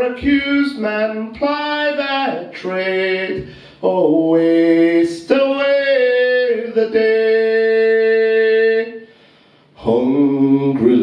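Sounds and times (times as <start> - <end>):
man singing unaccompanied: 0.0 - 9.1, 9.7 - 11.0.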